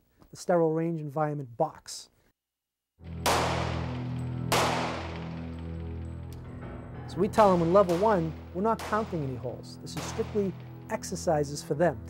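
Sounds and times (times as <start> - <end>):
background music low chord: 3.0 - 12.0
pistol shots: 3.2 - 5.9, 7.4 - 10.8.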